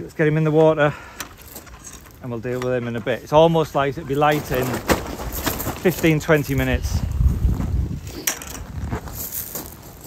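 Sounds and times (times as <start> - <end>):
microphone handling rumble: 4.4 - 9.3
wind noise on microphone: 4.9 - 10.0.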